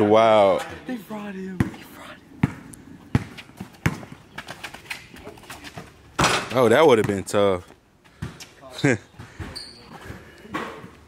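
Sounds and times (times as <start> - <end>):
basketball bouncing on concrete: 1.6 - 1.8, 2.4 - 7.4.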